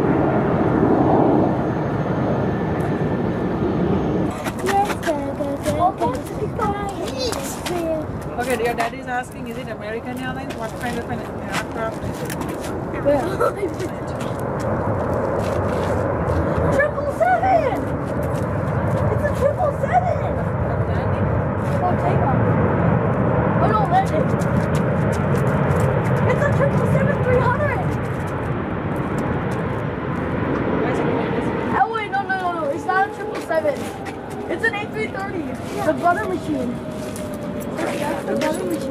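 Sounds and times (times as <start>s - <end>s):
jet engines roaring: 0.0s - 38.9s.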